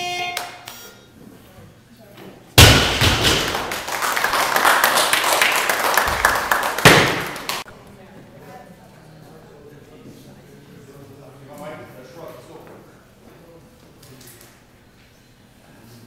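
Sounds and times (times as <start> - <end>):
barbell plates thudding on platform: 2.6 - 3.8, 6.9 - 7.4
crowd clapping and cheering: 2.9 - 7.7.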